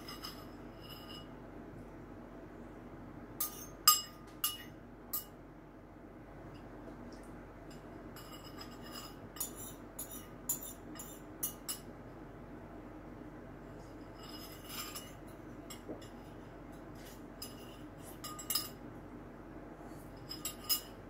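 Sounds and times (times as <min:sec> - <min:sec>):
spoon clinking against bowl: 0:03.4 - 0:05.4, 0:07.8 - 0:11.9.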